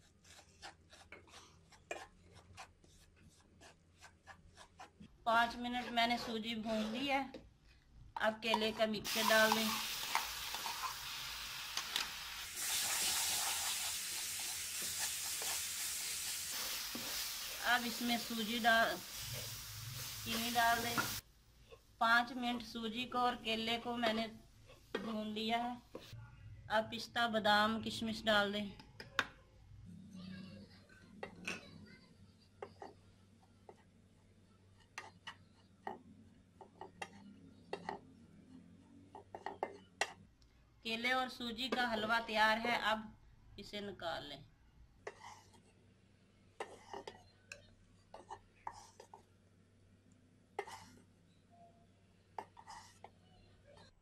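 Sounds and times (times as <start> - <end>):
wooden spatula scraping pan: 5.6 - 7.2
food sizzling in a frying pan: 9.1 - 21.2.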